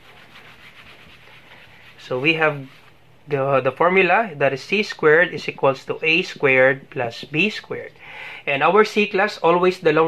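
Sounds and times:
eraser rubbing on whiteboard: 0:00.0 - 0:03.0.

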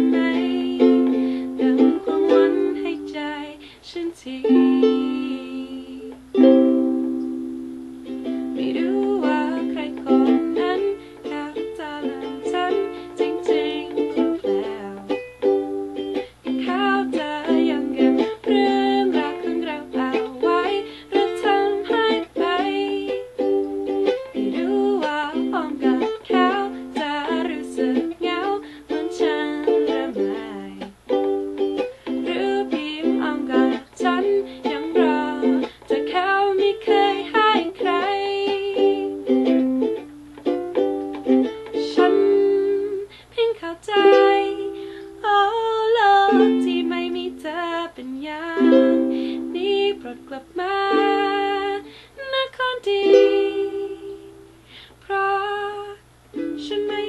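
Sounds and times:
woman singing: 0:00.0 - 0:07.2, 0:08.2 - 0:31.0, 0:31.8 - 0:40.0, 0:41.0 - 0:57.0
ukulele strumming: 0:00.0 - 0:57.0.

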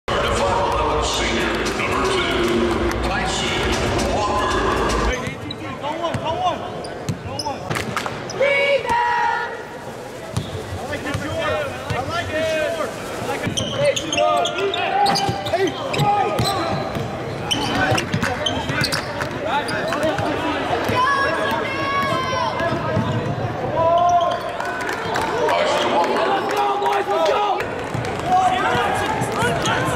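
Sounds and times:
voices echoing: 0:00.1 - 0:29.9
sneakers squeaking: 0:05.1 - 0:08.4, 0:10.3 - 0:12.1, 0:13.4 - 0:21.0, 0:22.0 - 0:24.6.

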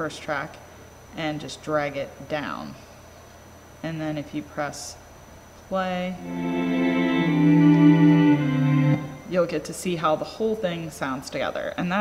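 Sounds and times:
string ensemble held chords: 0:06.2 - 0:09.4.

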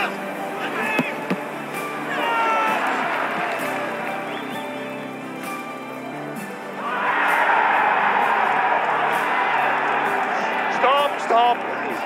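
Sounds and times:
crowd shouting: 0:00.0 - 0:04.6, 0:06.7 - 0:12.0
background music: 0:00.0 - 0:12.0.

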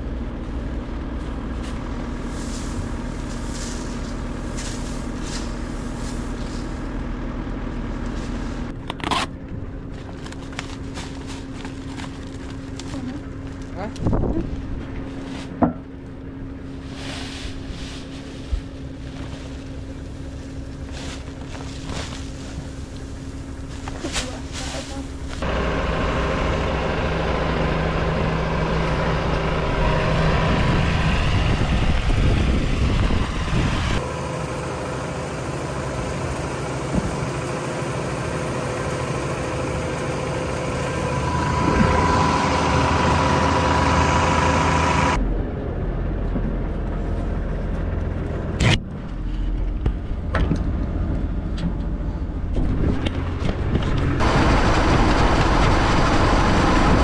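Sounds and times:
farm machinery engine running: 0:00.0 - 0:57.0.

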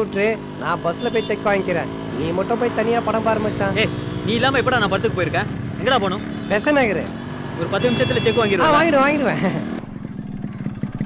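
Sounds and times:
man talking: 0:00.0 - 0:09.6
motorcycle engine running: 0:00.0 - 0:11.0.

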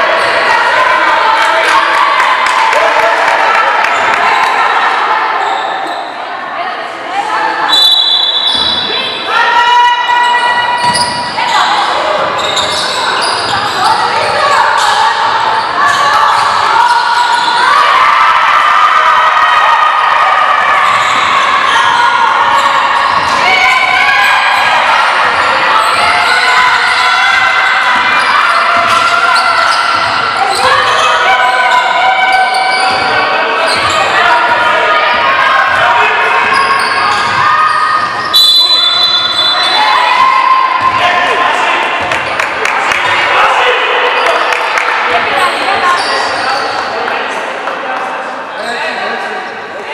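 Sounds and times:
voices calling out: 0:07.2 - 0:47.3.

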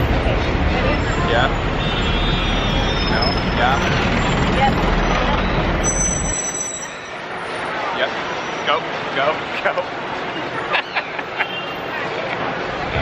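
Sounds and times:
vehicle engine rumble: 0:00.0 - 0:06.6
city street traffic: 0:00.0 - 0:13.0.

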